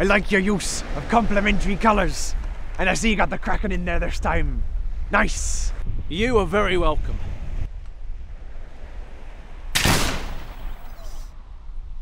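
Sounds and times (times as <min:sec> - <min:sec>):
surf: 0:00.0 - 0:07.6
wind: 0:00.0 - 0:12.0
pistol shot: 0:09.7 - 0:10.8.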